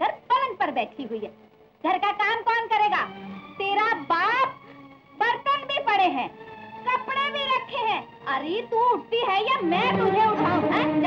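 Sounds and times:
faint background music: 0.0 - 11.0
woman talking animatedly: 6.9 - 11.0.

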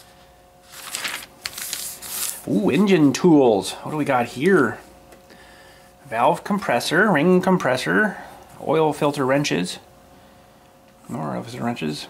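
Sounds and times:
glossy paper rustling: 0.6 - 3.1.

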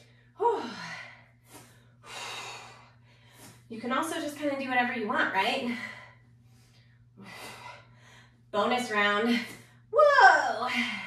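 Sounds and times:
woman breathing hard: 0.0 - 3.7, 5.6 - 8.5.

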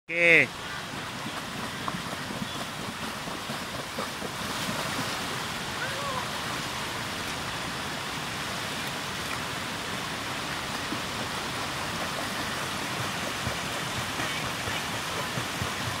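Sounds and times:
waterfall and flowing stream: 0.1 - 16.0
water splashing from wading: 0.5 - 16.0.

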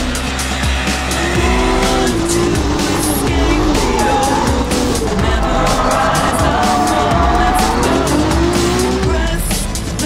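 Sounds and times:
car engine revving: 0.0 - 10.0
loud background music: 0.0 - 10.0
tyres squealing: 1.1 - 9.0.

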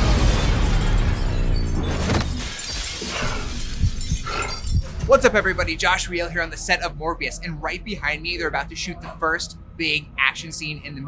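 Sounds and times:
glass shattering: 0.0 - 5.6
shards and debris falling: 0.0 - 5.7.

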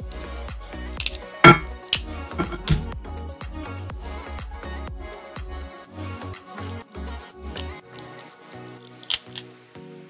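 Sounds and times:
background music: 0.0 - 10.0
crab shell cracking: 1.0 - 1.2, 8.9 - 9.4.

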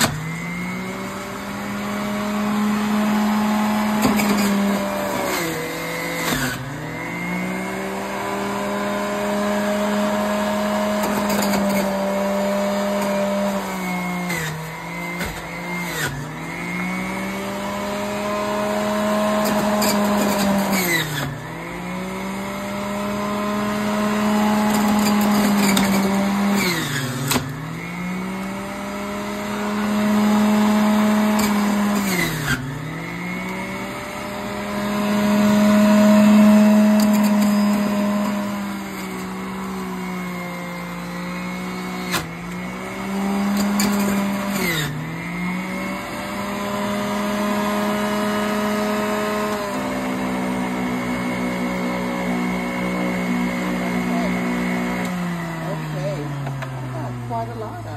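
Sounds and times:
juicer motor shredding fruit: 0.0 - 57.9.

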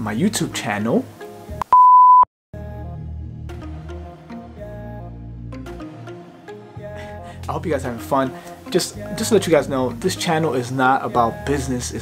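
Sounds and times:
steady pure tone beep: 1.6 - 2.3.

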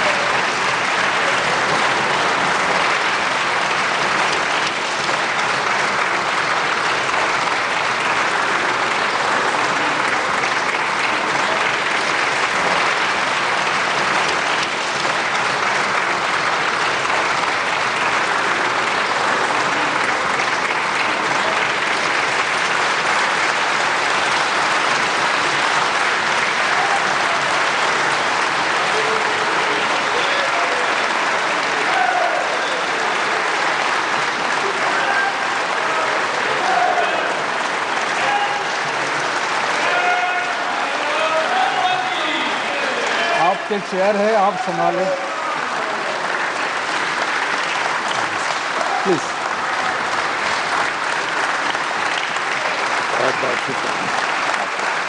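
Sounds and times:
crowd applause: 0.0 - 55.0.

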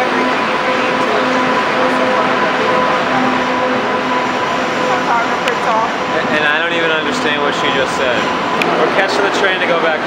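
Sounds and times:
high whine: 0.0 - 10.0
low hum: 0.0 - 10.0
train wheels rumbling on rail: 0.0 - 10.0.

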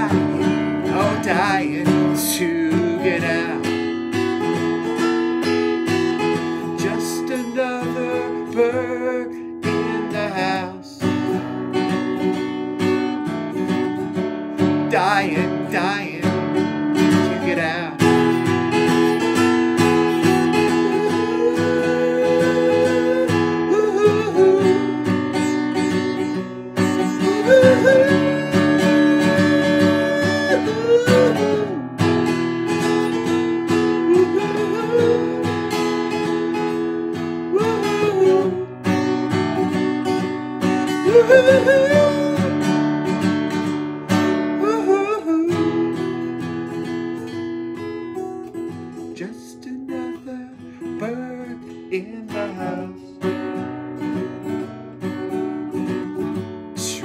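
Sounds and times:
man singing wordlessly: 0.0 - 12.0, 13.6 - 46.6, 48.4 - 53.4, 56.2 - 57.0
acoustic guitar strumming: 0.0 - 57.0.

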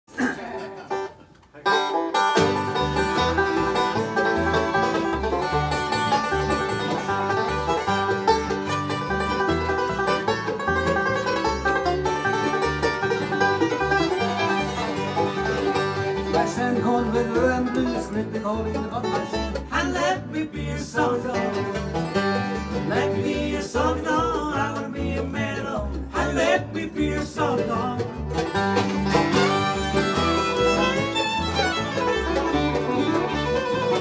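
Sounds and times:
acoustic guitar: 0.1 - 34.0
banjo: 0.1 - 34.0
upright bass: 0.1 - 34.0
fiddle: 0.6 - 25.0, 26.2 - 34.0.

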